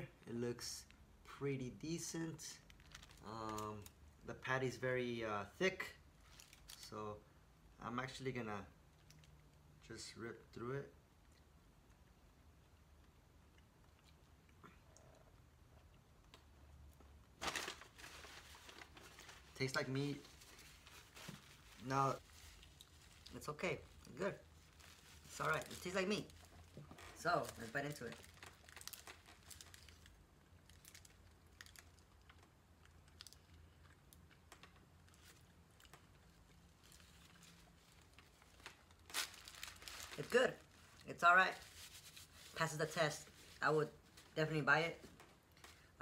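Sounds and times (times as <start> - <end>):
paper bag crinkling: 2.6 - 3.6, 17.3 - 32.0, 36.7 - 44.4
soft chewing: 8.9 - 9.7, 11.1 - 17.2, 20.3 - 25.3, 28.2 - 39.0.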